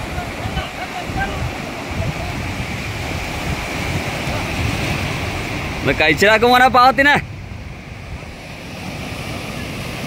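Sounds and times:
surf washing over rocks: 0.0s - 10.0s
wind rumbling on microphone: 0.0s - 10.0s.

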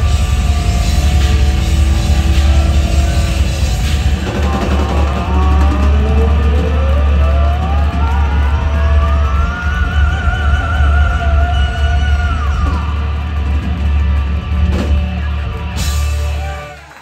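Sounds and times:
hard rock band playing live: 0.0s - 16.8s.

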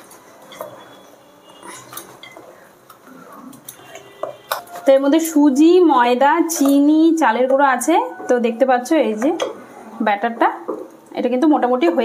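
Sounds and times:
woman speaking: 4.8s - 12.0s.

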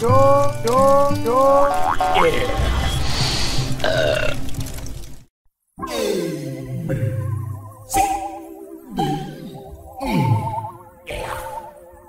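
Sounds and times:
music: 0.0s - 5.2s, 5.8s - 12.0s.

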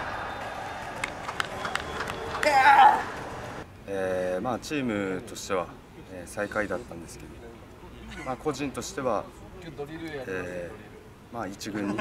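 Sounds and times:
person shouting: 2.4s - 3.1s.

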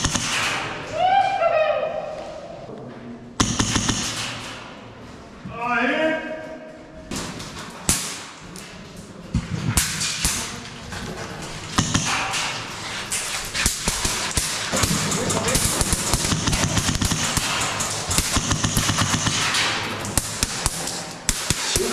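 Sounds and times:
airsoft guns firing: 0.0s - 0.8s, 3.4s - 4.6s, 11.7s - 12.7s, 13.6s - 21.9s.

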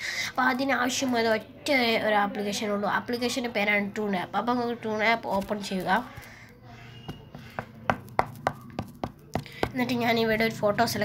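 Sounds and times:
woman speaking: 0.4s - 6.4s, 9.6s - 11.0s.

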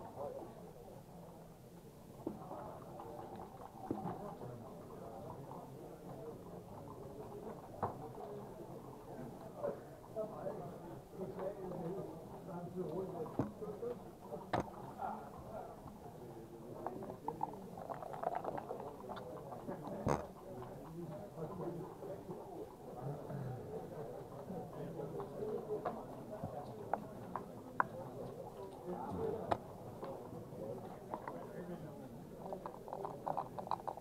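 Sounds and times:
murmur of voices: 0.0s - 34.0s
checkers and dice clicking on wood: 32.4s - 34.0s.

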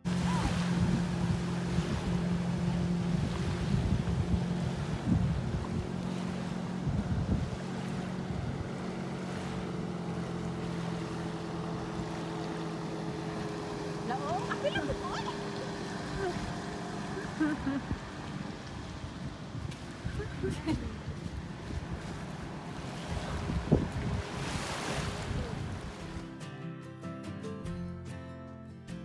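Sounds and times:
boat engine humming: 0.0s - 26.4s
wind noise on microphone: 0.1s - 8.7s, 17.8s - 26.2s.

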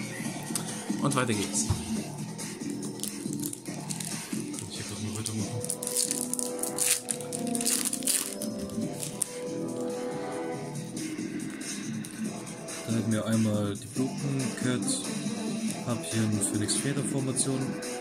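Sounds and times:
background music: 0.0s - 18.0s
foil pack crinkling and tearing: 2.6s - 9.4s.

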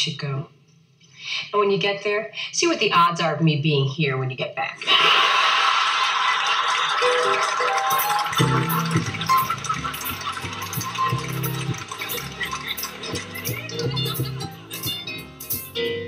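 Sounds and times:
studio audience laughter: 4.8s - 14.6s
upbeat instrumental theme music: 6.9s - 16.0s.

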